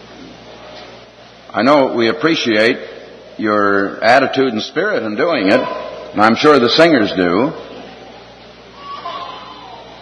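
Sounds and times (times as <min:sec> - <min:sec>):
old recording hiss: 0:00.0 - 0:10.0.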